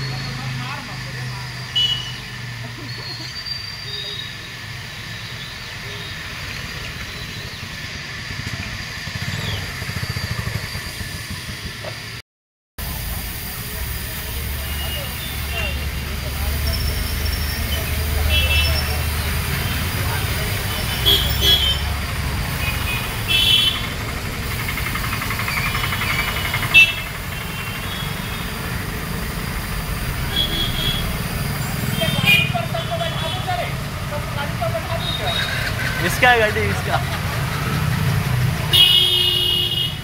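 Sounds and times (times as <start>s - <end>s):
indistinct voices: 12.8s - 38.6s.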